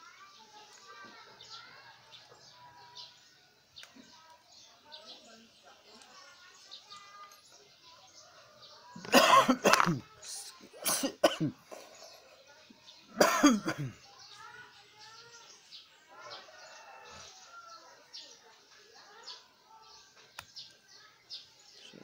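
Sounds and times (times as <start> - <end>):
person coughing: 9.1 - 10.0, 10.8 - 11.6, 13.2 - 14.0
faint bird chirps: 11.6 - 22.0.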